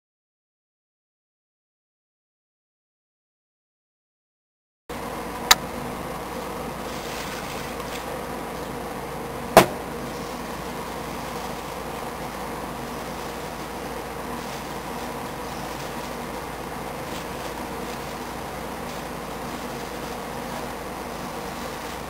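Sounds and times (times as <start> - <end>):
steady background hum: 4.9 - 22.0.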